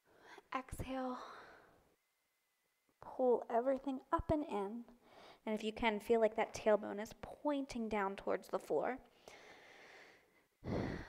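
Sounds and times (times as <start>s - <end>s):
woman breathing: 0.0s - 0.5s, 1.1s - 1.9s, 5.0s - 5.4s, 9.1s - 11.0s.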